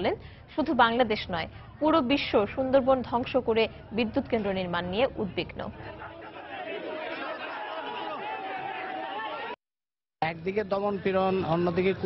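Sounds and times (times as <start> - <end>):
crowd chatter: 5.6 - 9.6.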